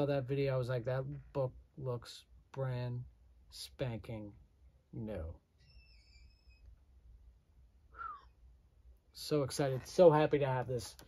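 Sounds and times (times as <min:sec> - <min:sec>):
faint high squeak: 0:05.6 - 0:06.8.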